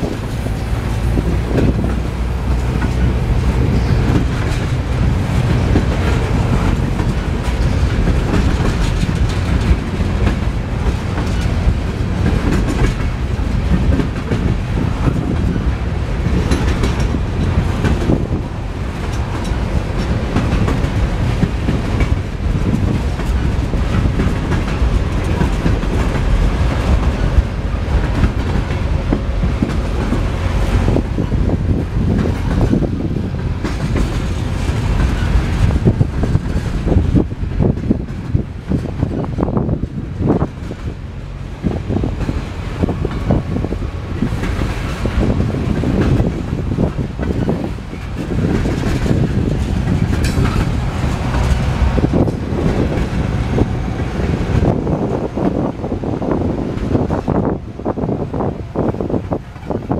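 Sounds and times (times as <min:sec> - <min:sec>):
train wheels rumbling on rails: 0:00.0 - 0:59.9
wheels clacking over rail joints: 0:00.0 - 0:59.9.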